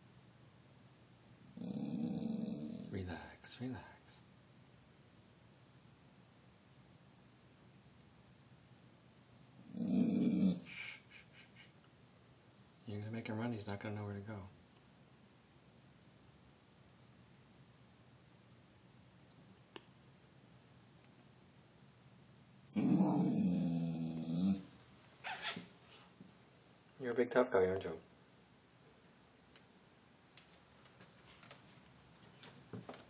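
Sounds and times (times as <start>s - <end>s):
dog growling: 1.5s - 3.0s, 9.6s - 11.0s, 22.7s - 24.7s.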